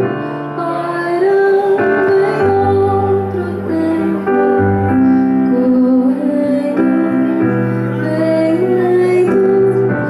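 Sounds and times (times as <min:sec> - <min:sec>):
keyboard accompaniment: 0:00.0 - 0:10.0
woman singing long notes: 0:00.6 - 0:10.0.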